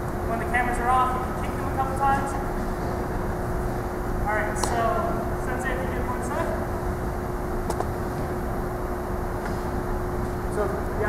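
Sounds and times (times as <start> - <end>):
faint steady hum: 0.0 - 11.0
low room noise rumble: 0.0 - 11.0
sharp click: 7.6 - 7.9.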